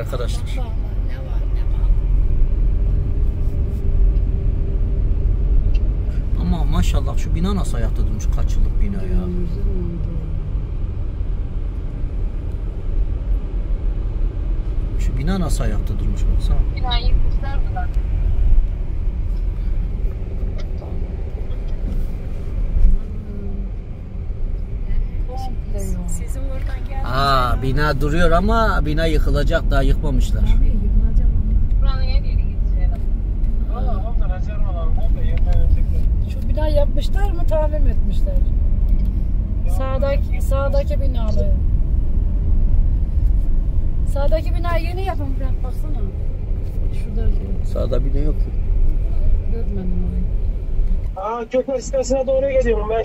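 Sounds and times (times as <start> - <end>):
car engine and tyre noise: 0.0 - 53.0.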